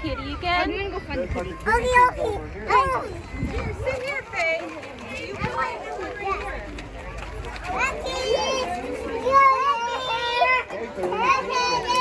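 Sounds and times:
children calling and squealing: 0.0 - 12.0.

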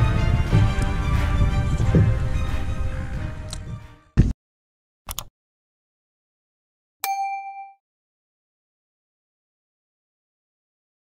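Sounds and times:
bright bell ding: 7.0 - 7.8.

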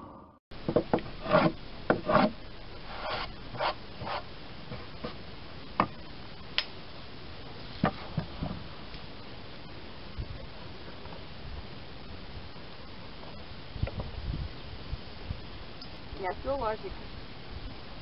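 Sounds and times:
wood scraping and knocking: 0.6 - 5.2, 7.8 - 8.7.

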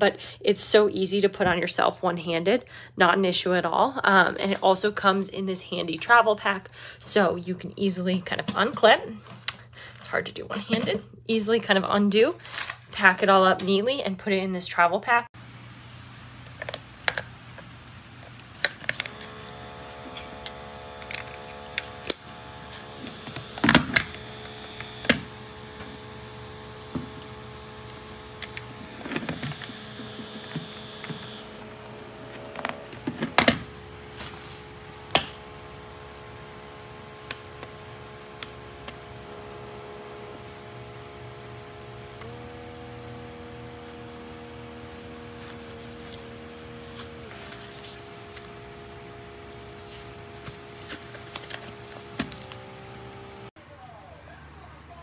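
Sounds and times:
air pump buzzing: 19.0 - 53.5.

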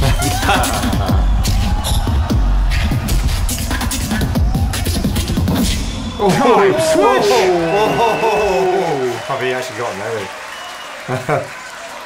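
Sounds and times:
beatboxing beat: 0.0 - 5.9.

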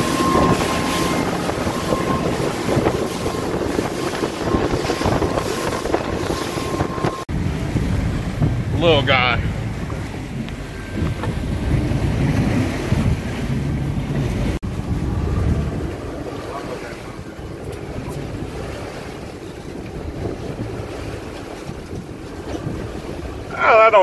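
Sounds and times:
wind buffeting microphone: 0.0 - 23.5
water washing against boat: 0.0 - 24.0.

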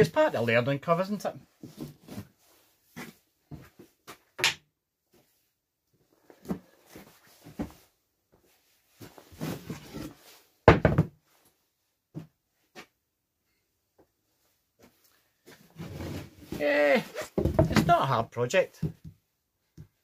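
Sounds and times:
knocks on wooden workbench: 10.7 - 11.2
board scraping: 15.7 - 17.8.

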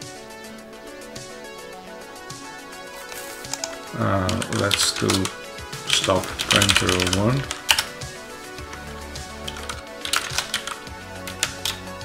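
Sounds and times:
background music: 0.0 - 12.0
voice without clear words: 3.8 - 7.6.

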